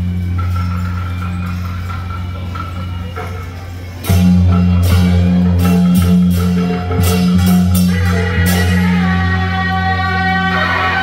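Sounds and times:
large gong ringing: 0:04.1 - 0:09.5.

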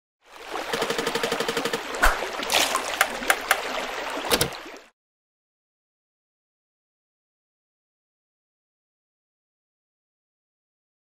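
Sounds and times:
water trickling and splashing: 0:00.2 - 0:04.9
rapid ticks: 0:00.6 - 0:02.0.

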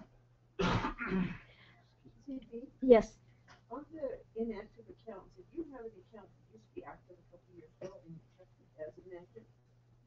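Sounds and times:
person coughing: 0:00.6 - 0:01.5.

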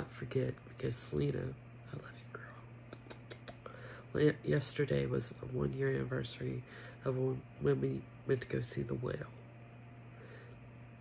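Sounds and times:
low steady hum: 0:00.0 - 0:11.0
woman whispering: 0:01.9 - 0:03.6
small lip clicks: 0:02.8 - 0:03.7.

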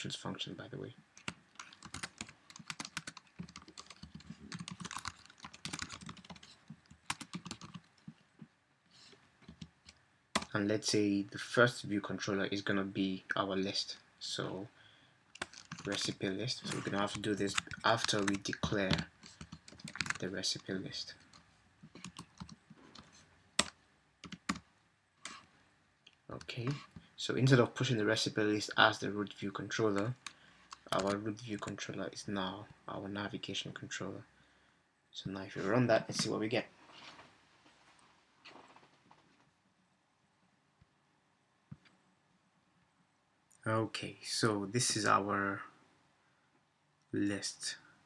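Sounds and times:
typing on computer keyboard: 0:01.2 - 0:07.9, 0:15.4 - 0:16.1, 0:17.1 - 0:20.2, 0:22.0 - 0:24.6.

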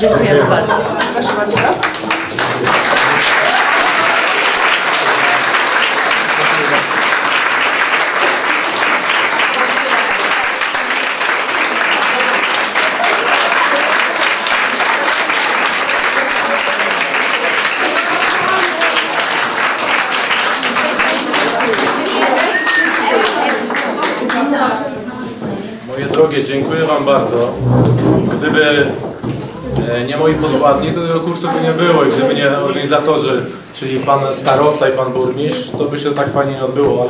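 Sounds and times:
crowd applauding: 0:00.6 - 0:24.7.

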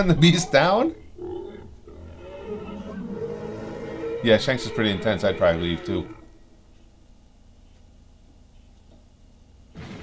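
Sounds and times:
low monster growl: 0:01.2 - 0:06.4.

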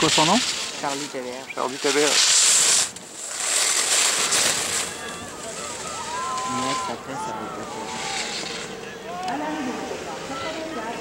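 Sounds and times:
steady rushing noise: 0:00.0 - 0:11.0
voices calling out: 0:04.1 - 0:11.0.

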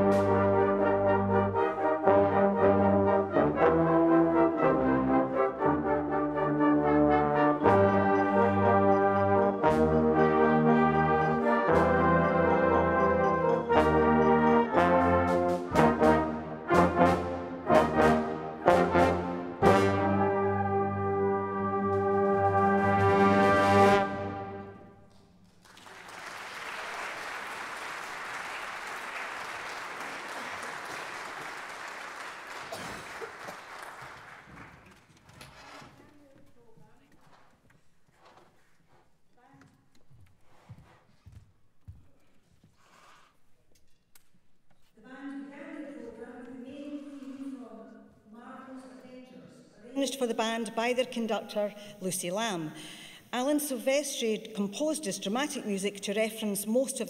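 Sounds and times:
brass band playing chords: 0:00.0 - 0:25.0
audience applause: 0:25.6 - 0:35.2.

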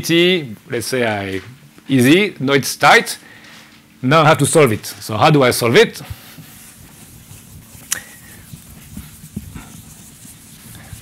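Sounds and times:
chalk tapping and scraping on blackboard: 0:06.3 - 0:11.0.

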